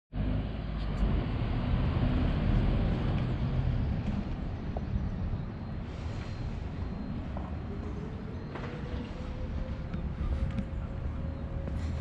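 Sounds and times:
road traffic rumble: 0.1s - 12.0s.

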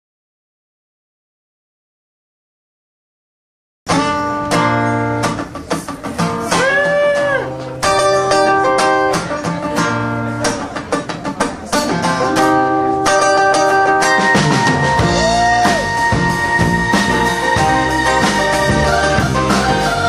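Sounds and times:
acoustic guitar strumming chords: 3.9s - 20.0s
guitar note bending: 3.9s - 20.0s.

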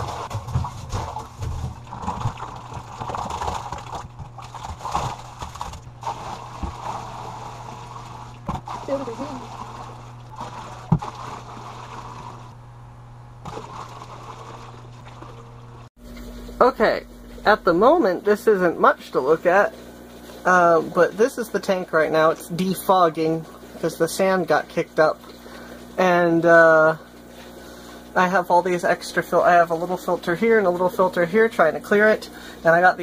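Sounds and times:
water pouring into aquarium: 0.0s - 12.6s, 13.4s - 16.2s
steady low hum: 0.0s - 33.0s.

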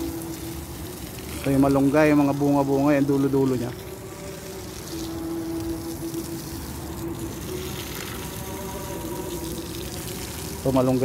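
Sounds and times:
faint steady hum: 0.0s - 11.0s
hose spraying water onto soil: 0.0s - 11.0s.

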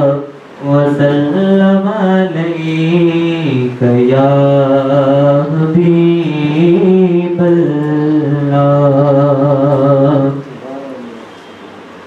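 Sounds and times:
man singing unaccompanied: 0.0s - 11.1s.

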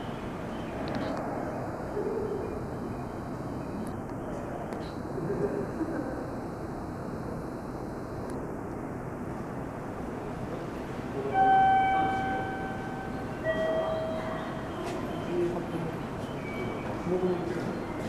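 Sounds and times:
station concourse background noise: 0.0s - 18.0s
faint voices: 10.0s - 18.0s.

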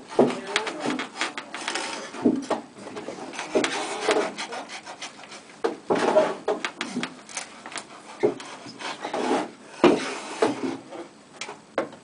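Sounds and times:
blade scraping through wood: 0.0s - 2.3s, 2.9s - 11.0s.

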